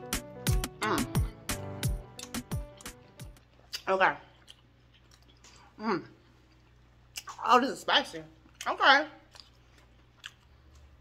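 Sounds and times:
soft mouth clicks: 2.1s - 2.4s
faint chewing: 2.1s - 7.5s, 8.4s - 11.0s.

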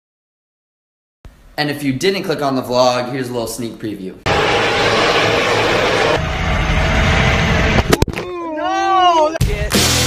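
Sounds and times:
vehicle road noise: 4.3s - 8.1s.

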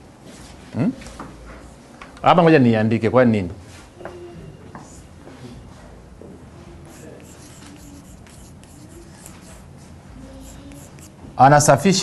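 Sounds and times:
chalk scratching on blackboard: 6.8s - 11.2s.

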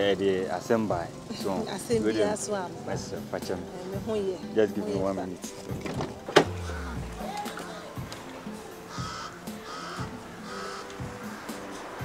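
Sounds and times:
background music: 0.0s - 12.0s
bird cawing: 6.4s - 11.8s.

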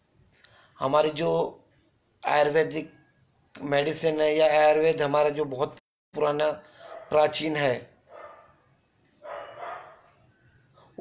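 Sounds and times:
dog barking faintly: 6.8s - 7.2s, 9.2s - 10.1s.

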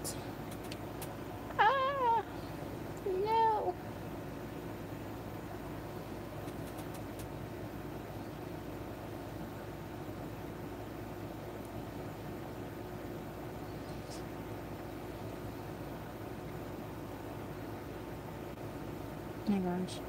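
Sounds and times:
low room hum: 0.0s - 20.0s
cat meowing: 1.5s - 2.3s.

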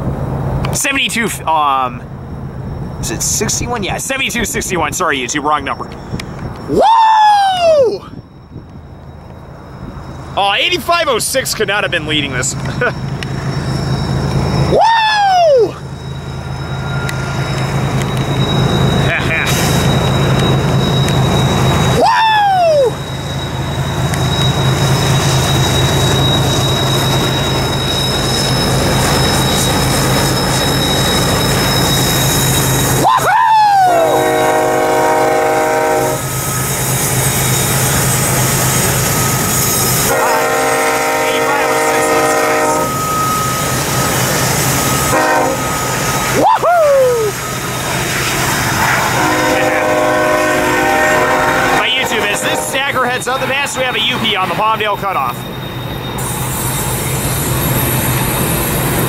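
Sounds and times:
diesel locomotive drone: 0.0s - 59.0s
locomotive air horn: 33.8s - 36.4s, 40.0s - 43.1s, 45.0s - 46.4s, 48.9s - 52.9s.

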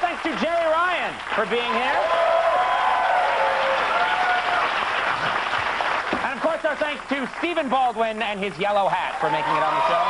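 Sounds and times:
audience applauding: 0.0s - 7.9s, 9.1s - 10.0s.

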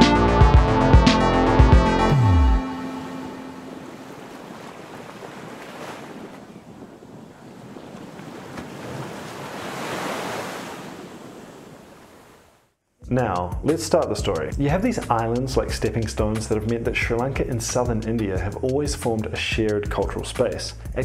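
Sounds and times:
ocean surf breaking on beach: 2.8s - 12.6s.

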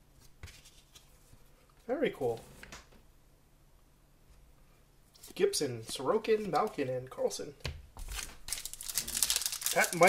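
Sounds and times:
person speaking: 5.2s - 7.6s, 9.0s - 10.0s
foil wrapper crinkling: 8.1s - 10.0s.

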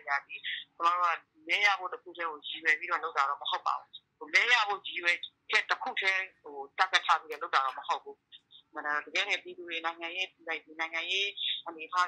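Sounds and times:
person speaking over telephone: 0.0s - 12.0s.

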